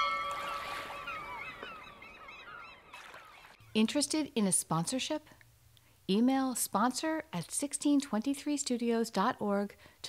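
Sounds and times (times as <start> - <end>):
ringing chime tone: 0.0 - 2.2
gliding bird cries: 0.0 - 3.6.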